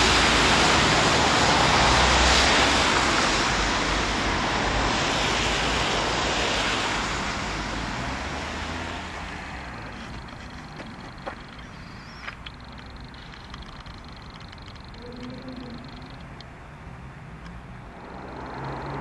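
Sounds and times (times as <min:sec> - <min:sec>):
street background: 0:00.0 - 0:19.0
tyre noise of passing cars: 0:00.0 - 0:19.0
faint clicks: 0:09.9 - 0:16.6, 0:17.4 - 0:17.6.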